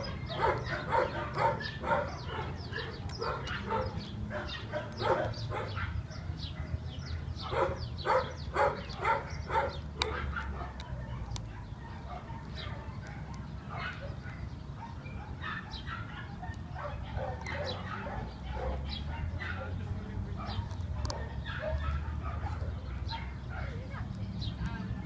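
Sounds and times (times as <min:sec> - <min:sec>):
dogs barking in the distance: 0:00.0 - 0:25.0.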